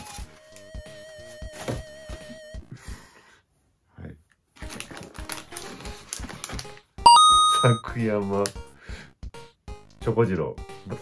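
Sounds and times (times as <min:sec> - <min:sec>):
two-note bell chime: 0:07.1 - 0:07.8.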